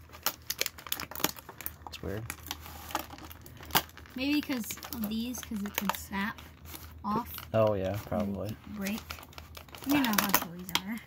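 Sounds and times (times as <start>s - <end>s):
plastic packaging crinkling and clicking: 0.0s - 11.0s.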